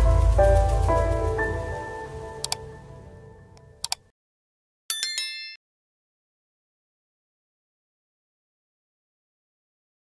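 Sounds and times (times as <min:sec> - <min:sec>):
intro jingle music: 0:00.0 - 0:03.8
sharp clicks: 0:03.8 - 0:04.1
high chime: 0:04.9 - 0:05.6.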